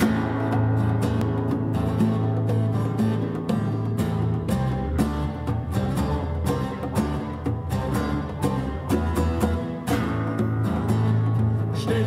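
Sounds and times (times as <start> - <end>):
acoustic guitar strumming: 0.0 - 12.0
bass guitar: 0.0 - 12.0
congas: 0.0 - 12.0
electric guitar: 0.0 - 12.0
person singing: 11.6 - 12.0.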